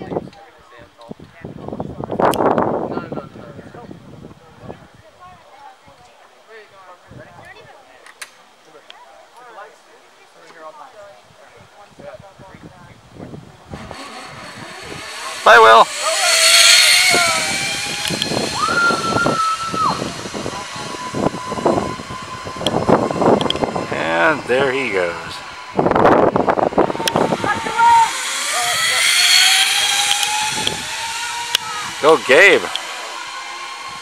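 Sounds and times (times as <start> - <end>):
zip line trolley whining on cable: 13.4 - 34.0
person shouting: 27.5 - 28.2.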